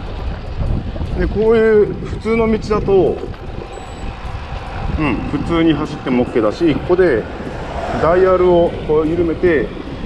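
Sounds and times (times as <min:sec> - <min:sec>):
bike rolling on asphalt: 0:00.0 - 0:10.0
wind on microphone: 0:00.0 - 0:10.0.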